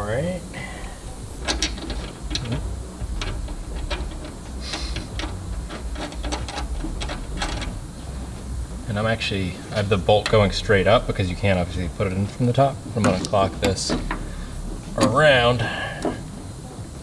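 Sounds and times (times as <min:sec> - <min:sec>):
metallic clicks of bolt and washers: 0:01.4 - 0:02.6.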